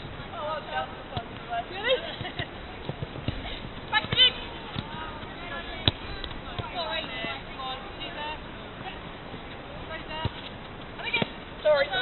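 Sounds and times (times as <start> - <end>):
ball kicks: 1.1 - 7.9, 10.0 - 12.0.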